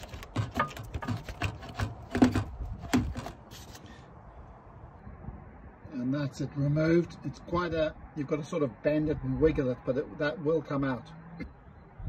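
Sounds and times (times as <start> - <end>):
rubber duct clicking and rubbing: 0.0 - 3.8.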